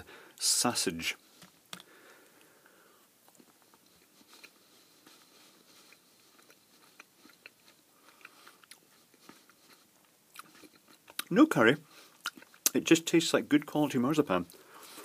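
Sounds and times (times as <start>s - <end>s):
faint chewing: 1.3s - 12.8s, 14.4s - 15.0s.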